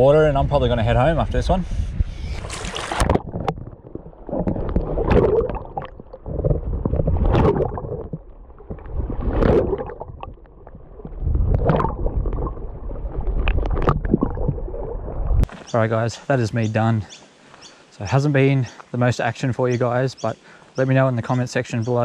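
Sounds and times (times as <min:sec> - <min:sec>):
water splash: 0:02.4 - 0:15.6
muffled underwater water sloshing: 0:02.4 - 0:15.7.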